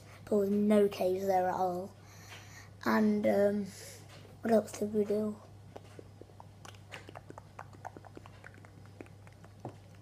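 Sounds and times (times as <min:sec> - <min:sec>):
low steady hum: 0:00.0 - 0:10.0
lip and tongue smacks: 0:05.8 - 0:10.0.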